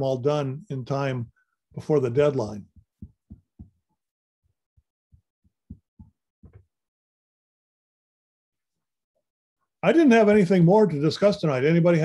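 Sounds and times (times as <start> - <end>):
soft low thumps: 2.6 - 3.8, 5.1 - 6.7.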